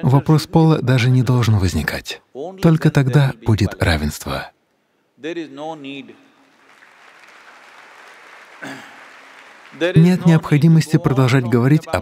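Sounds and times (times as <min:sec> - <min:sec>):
audience applause: 0:06.2 - 0:10.6.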